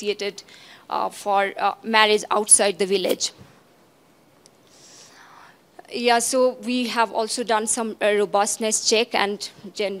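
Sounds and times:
breath into microphone: 0.5 - 0.9, 4.6 - 5.7.

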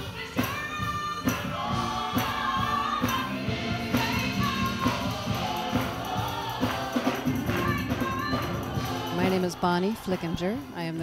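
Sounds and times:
live band: 0.0 - 10.2
drum beat: 0.0 - 11.0
choir singing held notes: 0.1 - 10.8.

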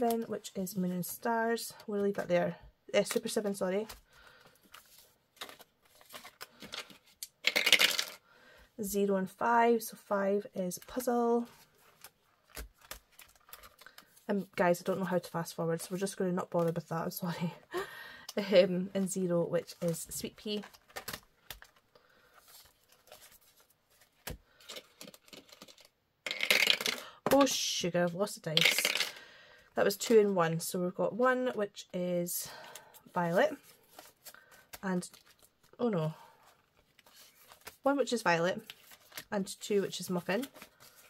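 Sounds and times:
paper rustling: 3.8 - 7.2, 11.4 - 14.3, 19.0 - 25.9, 33.0 - 35.6, 36.4 - 37.9, 38.6 - 41.0
dice rattling down a dice tower: 7.4 - 8.2, 25.4 - 27.4, 28.6 - 29.2.

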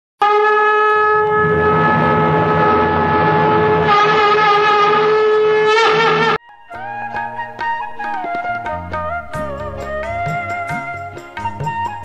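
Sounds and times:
wind instrument long note: 0.2 - 12.0.

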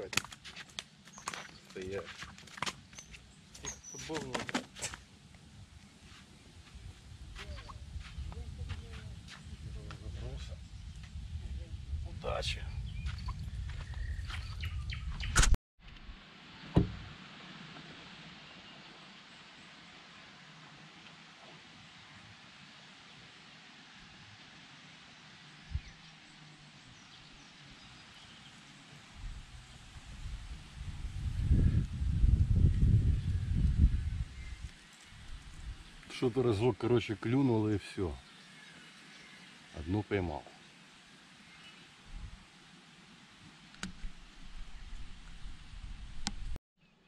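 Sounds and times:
faint open air hiss: 0.0 - 10.5, 16.0 - 32.6, 34.3 - 45.4
bird calls: 1.0 - 2.0, 2.9 - 4.4, 12.7 - 15.5
wind gusting on microphone: 5.5 - 15.6, 25.6 - 26.0, 29.1 - 36.1, 42.0 - 42.4, 43.8 - 46.6.

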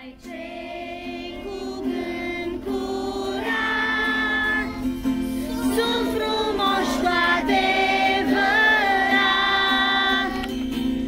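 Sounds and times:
children singing: 0.0 - 10.5
acoustic guitar: 0.0 - 11.0.

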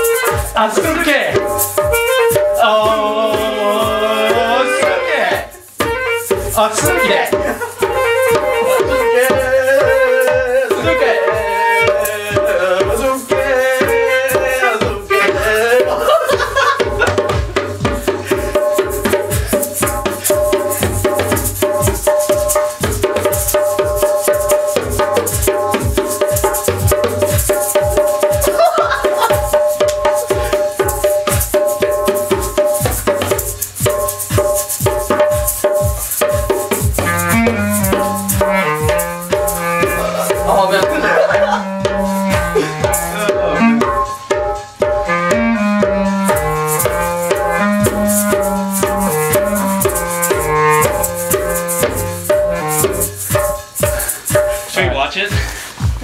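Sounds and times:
clarinet melody: 0.0 - 0.6, 1.4 - 16.2, 18.2 - 54.2
djembe hand drumming: 0.0 - 56.0.

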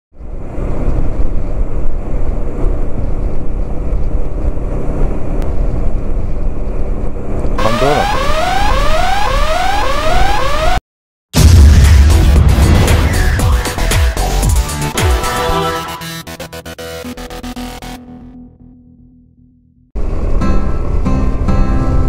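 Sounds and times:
wind noise: 0.2 - 7.6
rising alarm-like tone: 7.6 - 10.8.

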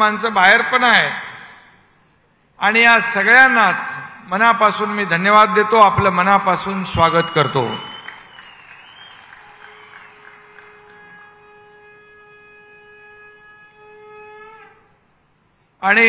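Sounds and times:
long blown horn note: 9.0 - 14.9.

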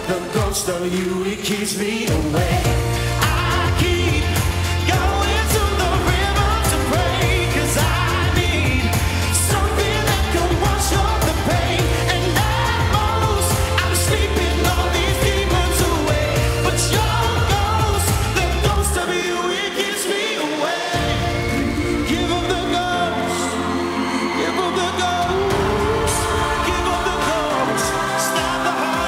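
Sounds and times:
steady drum beat: 0.0 - 19.3, 20.9 - 29.0
band playing: 0.0 - 29.0
man singing: 0.0 - 29.0
heavy bass line: 2.4 - 19.0, 21.0 - 29.0.

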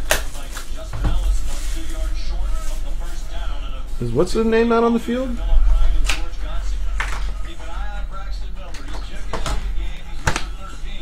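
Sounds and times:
television music: 0.0 - 11.0
television speech: 0.0 - 11.0.

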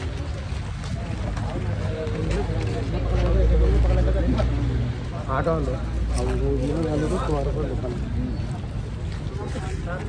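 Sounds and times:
men talking: 1.0 - 10.0.

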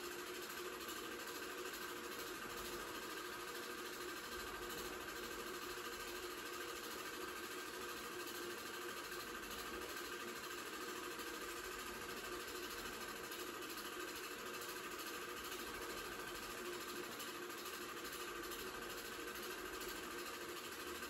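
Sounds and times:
film projector whirring: 0.0 - 21.0.

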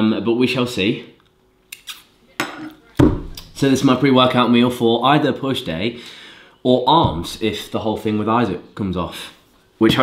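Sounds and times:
dull thump: 7.0 - 7.4.

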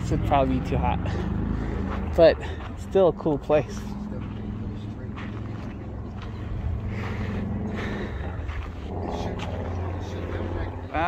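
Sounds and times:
steady low hum: 0.0 - 11.0
faint distant voices: 1.0 - 11.0.

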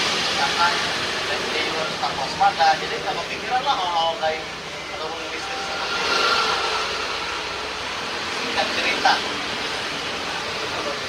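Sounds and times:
vehicle passing: 5.1 - 10.0.

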